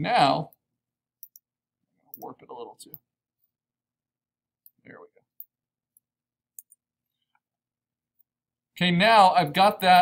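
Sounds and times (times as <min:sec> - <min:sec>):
computer mouse clicks: 0:01.2 - 0:01.5.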